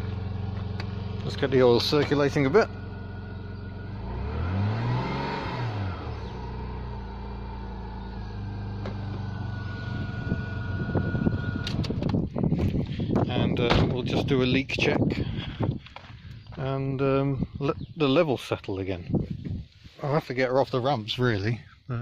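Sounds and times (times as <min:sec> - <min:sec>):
car engine idling and revving: 0:00.0 - 0:16.8.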